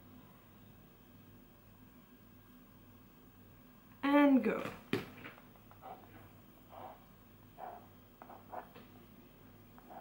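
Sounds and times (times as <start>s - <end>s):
pen scratching on paper: 7.6s - 8.8s.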